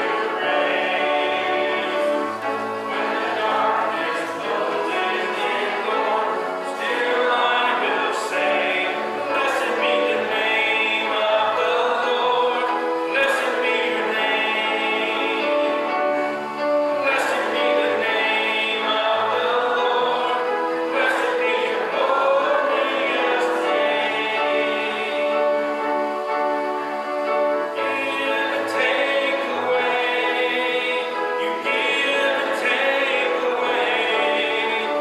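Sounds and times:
congregation singing a hymn: 0:00.0 - 0:35.0
instrumental accompaniment: 0:00.0 - 0:35.0.

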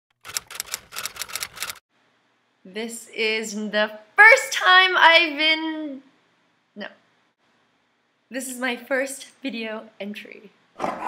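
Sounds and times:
rapid mechanical clicks: 0:00.2 - 0:01.8.

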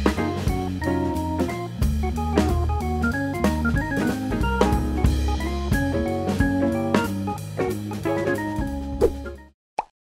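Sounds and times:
music with guitar and drums: 0:00.0 - 0:09.5.

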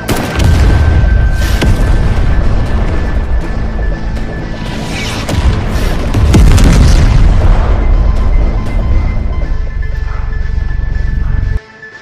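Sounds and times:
explosion blast with deep rumble: 0:00.1 - 0:09.4
orchestral score music: 0:00.1 - 0:12.0.

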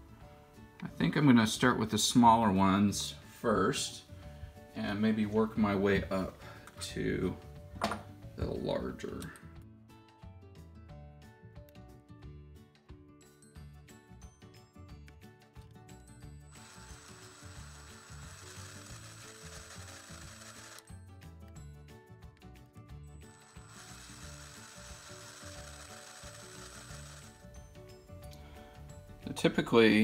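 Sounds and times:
background music: 0:00.0 - 0:30.0
electric drill whining: 0:16.5 - 0:21.0, 0:23.2 - 0:27.6.

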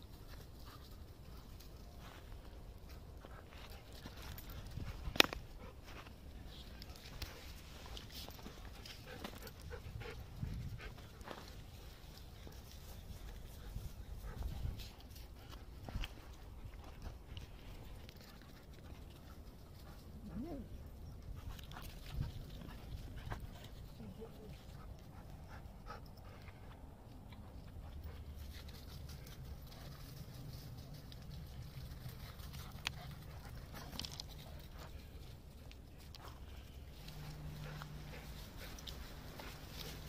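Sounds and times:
faint clicks and scuffs: 0:00.1 - 0:20.5, 0:21.2 - 0:40.0
footsteps on sandy path: 0:36.4 - 0:40.0.

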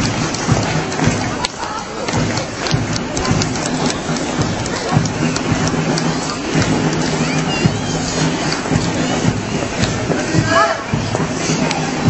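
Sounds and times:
sharp clicks: 0:00.0 - 0:08.8
dense wash of street noise: 0:00.0 - 0:12.0.

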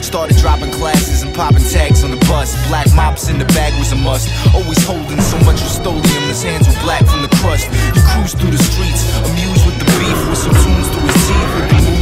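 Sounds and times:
rapping vocal: 0:00.0 - 0:12.0
deep kick drum: 0:05.1 - 0:08.7.

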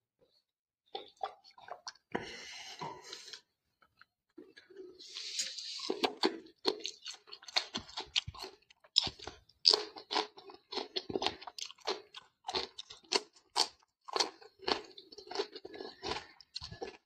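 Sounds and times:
person crunching cucumber: 0:04.4 - 0:17.0.

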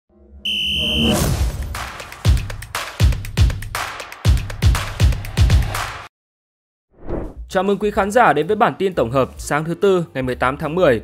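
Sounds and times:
high electronic beep: 0:00.4 - 0:01.3.

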